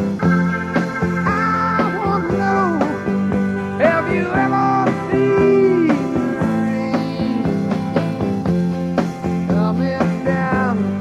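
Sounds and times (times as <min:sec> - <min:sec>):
rock music with guitar: 0:00.0 - 0:11.0.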